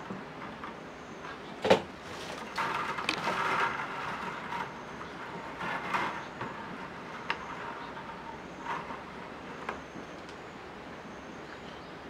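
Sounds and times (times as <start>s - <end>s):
bamboo stakes rustling and clicking: 1.7s - 6.5s.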